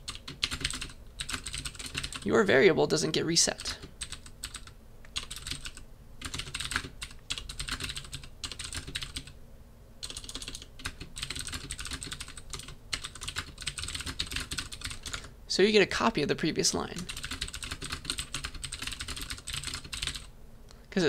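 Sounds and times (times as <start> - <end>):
typing on a keyboard: 0.0 - 2.3, 3.6 - 9.4, 10.0 - 15.3, 17.1 - 20.3.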